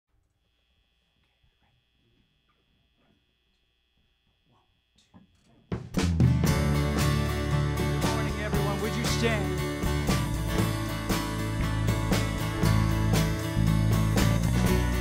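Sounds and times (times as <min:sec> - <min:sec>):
church band with drums and guitar: 0:05.7 - 0:15.0.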